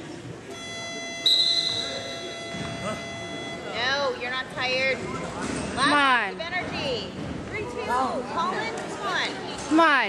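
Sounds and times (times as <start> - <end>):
scoreboard buzzer tone: 0.5 - 3.9.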